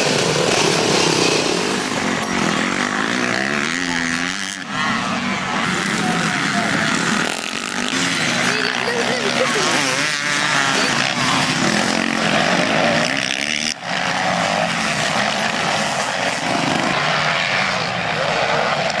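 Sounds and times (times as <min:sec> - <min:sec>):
motocross bike engines revving: 0:00.0 - 0:19.0.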